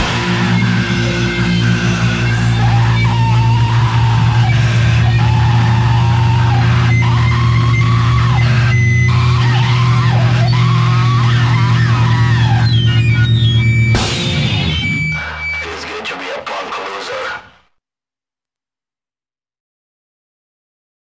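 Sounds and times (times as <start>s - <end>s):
industrial metal music: 0.0s - 17.6s.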